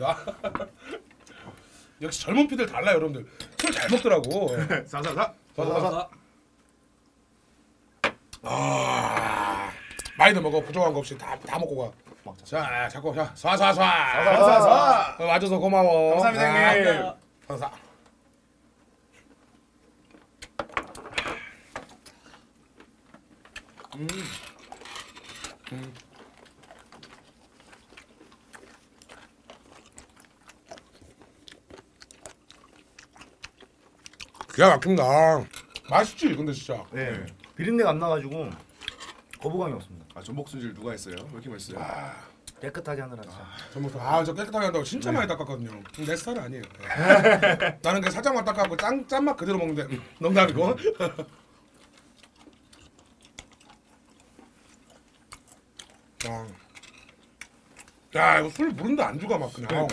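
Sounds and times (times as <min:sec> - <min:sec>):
people chewing seafood: 0:00.5 - 0:01.9, 0:08.3 - 0:12.6, 0:16.2 - 0:59.9.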